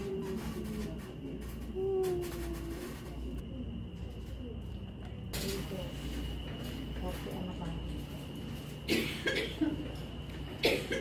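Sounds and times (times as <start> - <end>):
person coughing: 8.9 - 9.9, 10.6 - 11.0.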